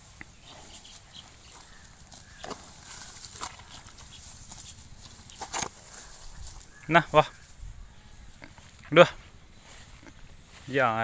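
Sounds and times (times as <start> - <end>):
animal cropping grass: 0.0 - 7.6, 8.2 - 10.9.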